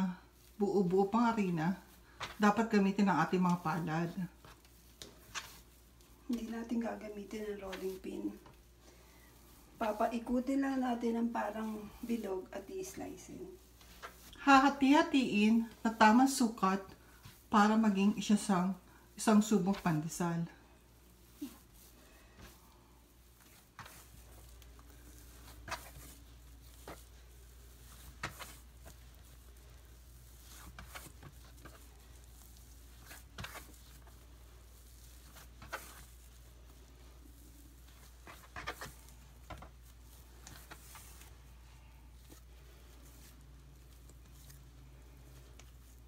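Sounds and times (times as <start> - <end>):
hands patting bread dough: 0.4 - 11.6, 15.4 - 46.0.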